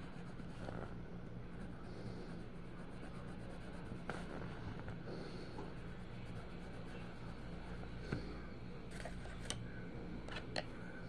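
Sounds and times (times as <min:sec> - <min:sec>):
colored pencil scratching on paper: 0:00.0 - 0:00.9, 0:01.5 - 0:07.9
steady low hum: 0:00.0 - 0:11.0.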